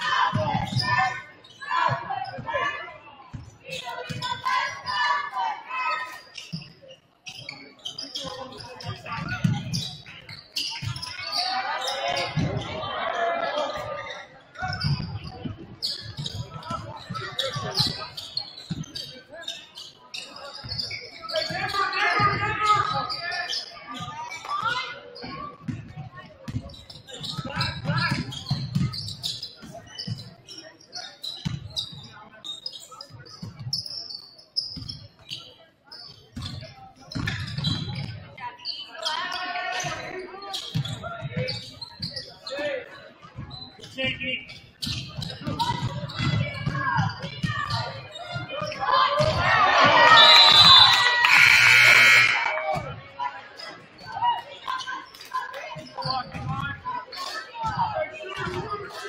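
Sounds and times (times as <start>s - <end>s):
people shouting in gym: 0.0s - 6.3s, 10.9s - 14.9s, 45.5s - 53.4s.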